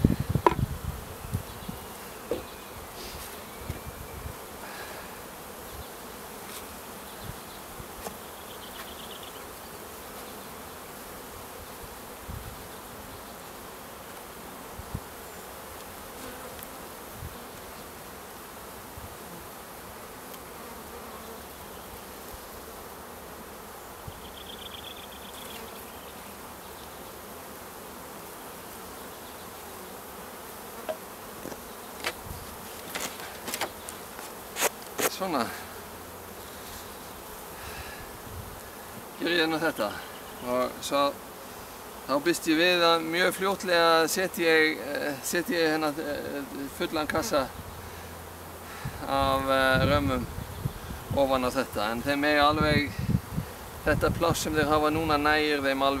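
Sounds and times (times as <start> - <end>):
honeybees buzzing: 0.0 - 56.0
wooden hive parts knocking: 0.4 - 0.6, 2.2 - 2.5, 30.8 - 35.0.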